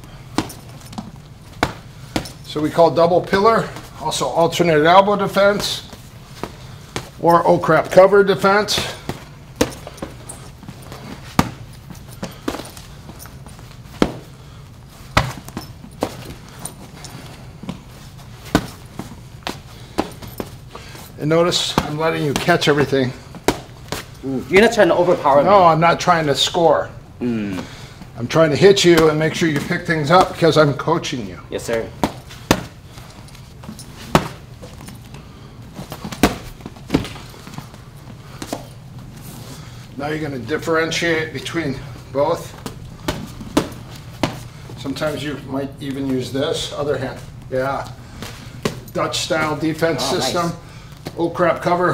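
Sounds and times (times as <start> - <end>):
boxing glove punches: 0.1 - 2.4, 7.9 - 14.4, 15.0 - 16.8, 17.6 - 20.9, 21.5 - 24.1, 31.7 - 33.1, 33.8 - 34.8, 35.9 - 38.8, 42.6 - 44.6.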